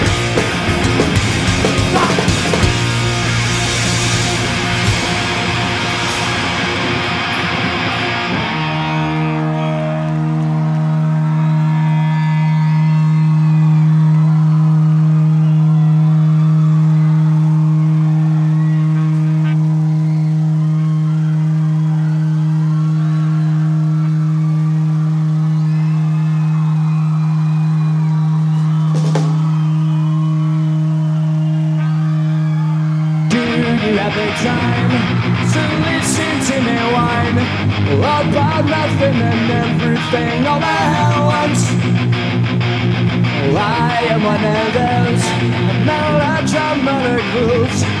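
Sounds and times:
electric guitar feedback drone: 0.0 - 48.0.

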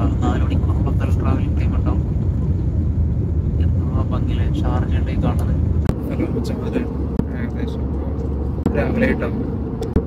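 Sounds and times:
airliner cabin engine rumble: 0.0 - 10.0.

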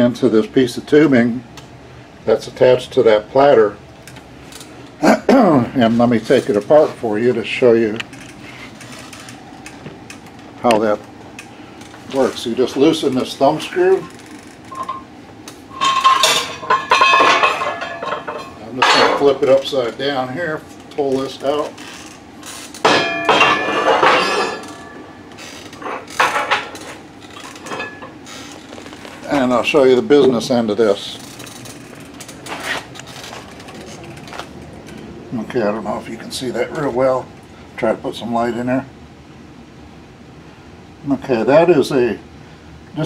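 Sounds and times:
scraping rustle: 8.1 - 9.7, 21.1 - 35.0
metal scraping and clinking: 14.7 - 15.1, 15.7 - 19.7, 21.1 - 29.3.

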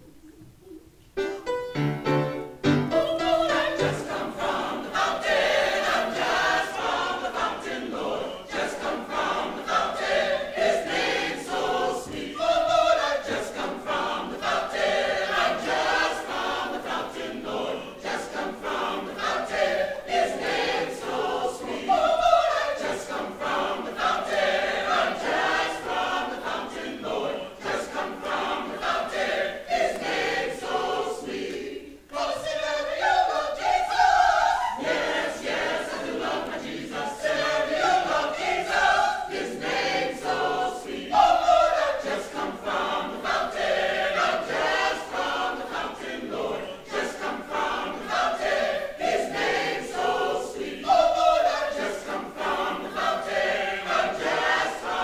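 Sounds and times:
mixed choir singing: 2.2 - 55.0.

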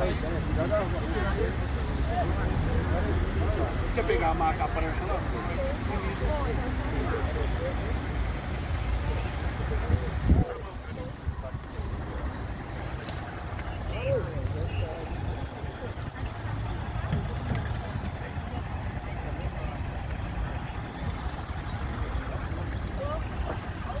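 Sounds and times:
distant voices talking: 0.0 - 24.0.

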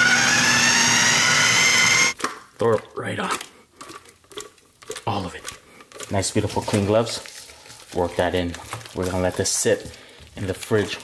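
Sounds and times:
food processor motor whining: 0.0 - 2.2.

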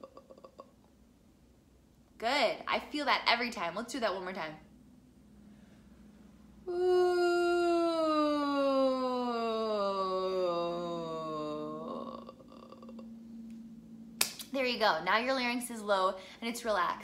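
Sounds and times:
woman singing a downward glide: 6.7 - 17.0.

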